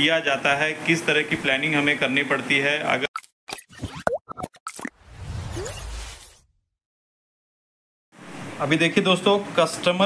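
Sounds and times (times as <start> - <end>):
cartoon pops and plops: 3.5 - 5.0.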